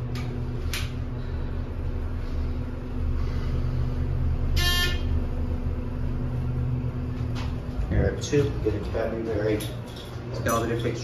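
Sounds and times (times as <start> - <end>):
elevator pump motor humming: 0.0 - 11.0
elevator chime: 4.5 - 5.2.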